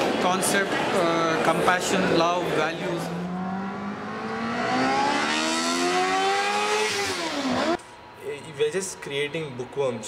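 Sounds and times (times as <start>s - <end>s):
race car engine passing by: 1.6s - 7.8s.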